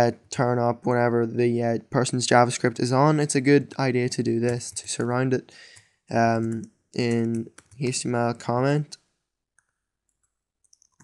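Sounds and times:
computer mouse and keyboard clicks: 4.4 - 8.1, 9.6 - 11.0.

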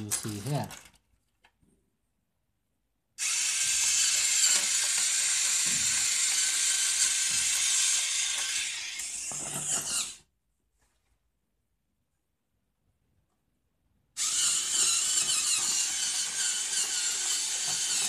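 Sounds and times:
toy tank tracks running: 0.0 - 1.0, 3.2 - 10.2, 14.2 - 18.0.

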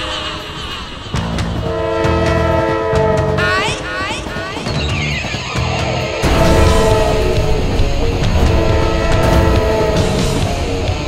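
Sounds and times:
locomotive horn chord: 0.0 - 4.0, 6.2 - 11.0
low rumble: 6.2 - 11.0.

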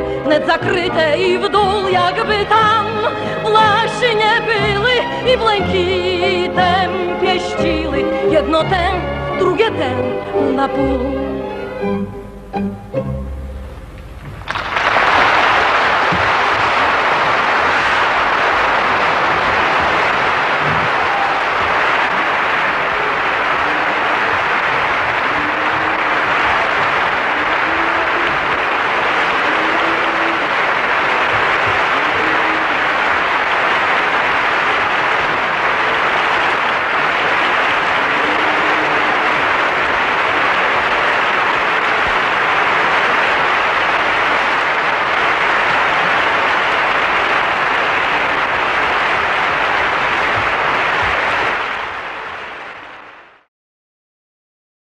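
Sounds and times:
large audience applauding: 0.0 - 9.7, 14.1 - 53.5.

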